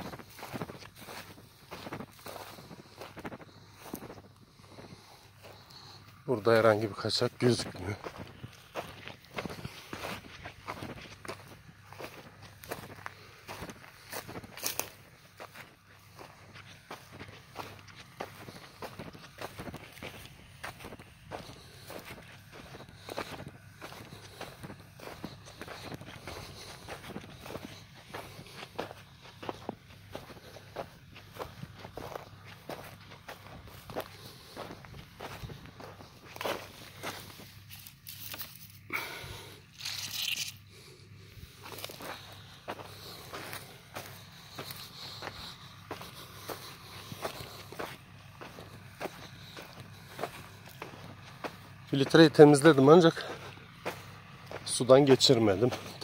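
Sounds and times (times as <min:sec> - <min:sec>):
footsteps on dry dirt: 0:00.0 - 0:56.0.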